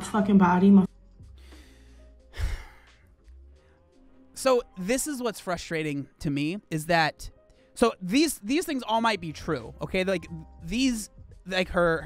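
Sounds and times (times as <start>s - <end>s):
man sighing: 2.3s - 3.0s.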